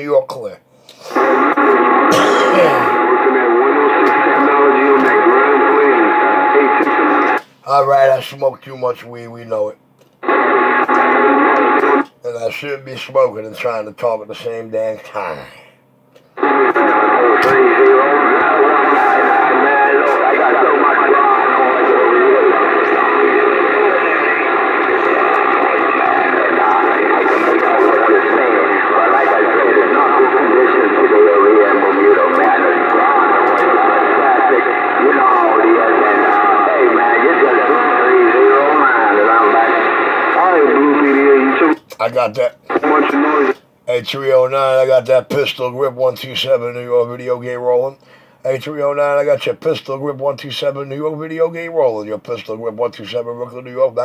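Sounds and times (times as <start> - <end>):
voice over radio speaker: 0.0 - 54.0.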